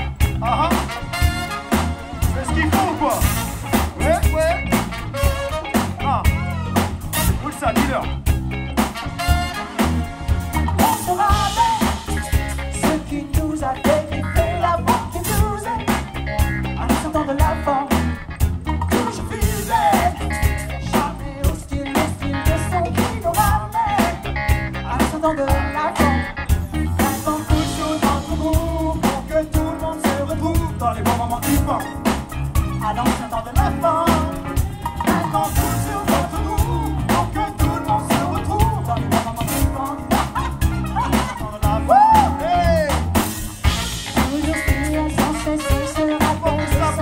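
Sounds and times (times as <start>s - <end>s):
drum beat: 0.0s - 18.0s, 26.1s - 47.0s
bass line: 0.0s - 47.0s
funk band groove: 0.0s - 47.0s
guitar: 0.0s - 47.0s
person singing: 10.7s - 18.2s, 18.9s - 47.0s.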